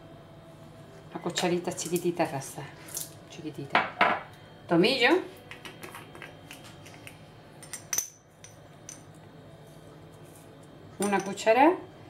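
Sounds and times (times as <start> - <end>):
metal spoon clinking on jars: 7.6 - 9.1.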